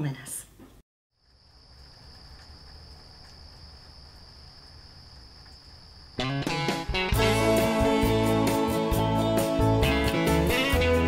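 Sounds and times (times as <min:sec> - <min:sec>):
crickets trilling: 0:01.2 - 0:06.7.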